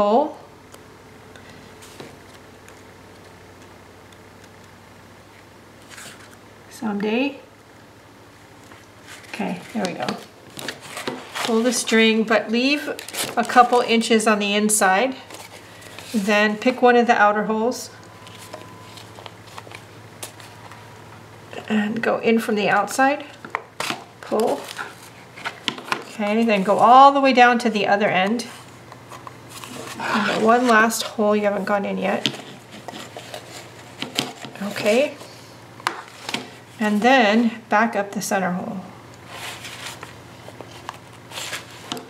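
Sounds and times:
low steady hum: 0.0s - 42.0s
paper pages rustling: 5.8s - 6.4s, 8.6s - 14.1s, 15.1s - 16.3s, 18.2s - 20.9s, 23.4s - 27.0s, 28.4s - 31.2s, 32.1s - 37.0s, 39.3s - 42.0s.

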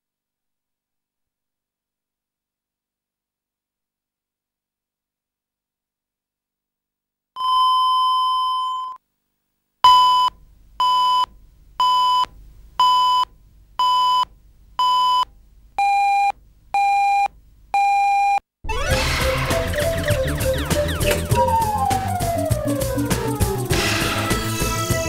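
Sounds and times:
countdown beeps: 15.8s - 23.4s.

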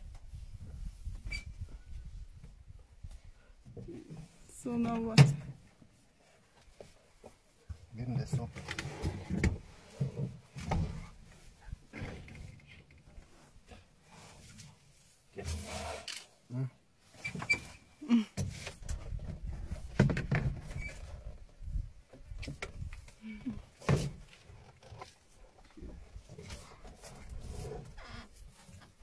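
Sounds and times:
knocks and rustles in vehicle: 18.4s - 21.2s.

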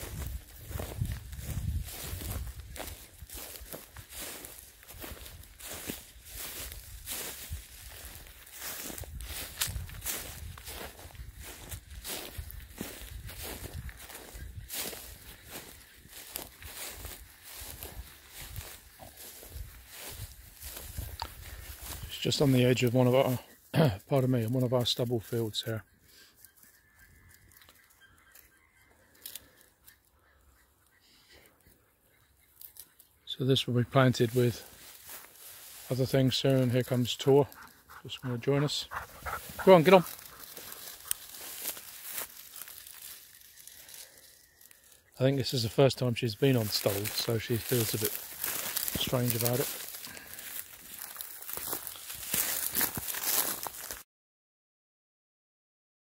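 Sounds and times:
footsteps through dry grass: 0.0s - 54.0s.

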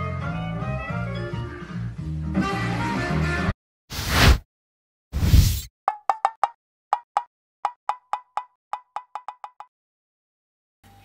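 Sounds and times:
short whooshes: 3.9s - 4.4s, 5.2s - 5.7s.

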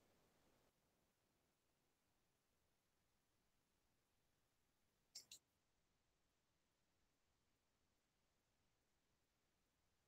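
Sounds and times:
faint clicks: 5.1s - 5.4s.

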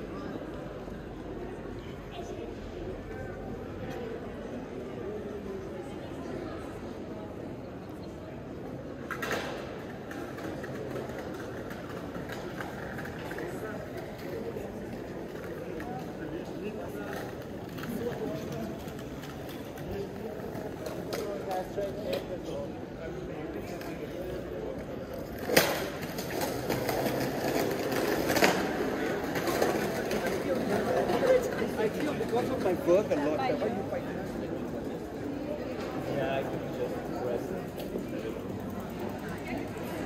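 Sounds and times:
low hum of city noise: 0.0s - 40.0s
passers-by talking: 0.0s - 40.0s.

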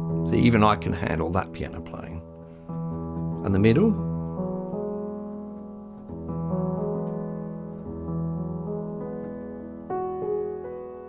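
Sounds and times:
upright piano chords: 0.0s - 11.0s.

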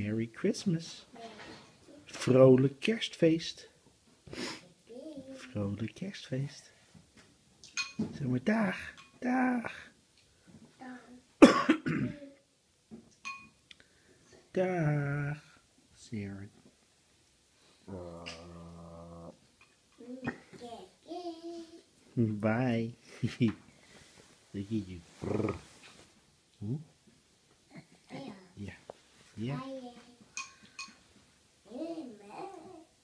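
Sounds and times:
person coughing: 11.4s - 12.2s
low adult voice speaking: 17.9s - 19.4s, 24.5s - 25.7s, 28.6s - 30.0s.

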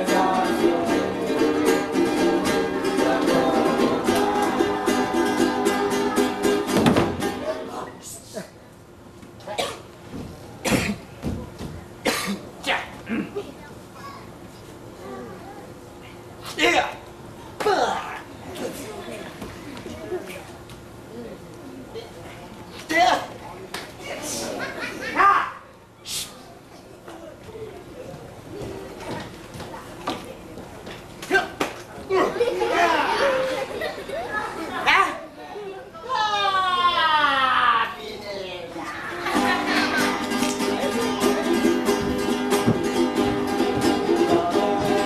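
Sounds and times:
children chattering: 0.0s - 8.7s, 10.6s - 31.2s, 31.9s - 45.0s
person coughing: 9.5s - 9.8s, 12.0s - 12.4s, 13.1s - 13.5s.

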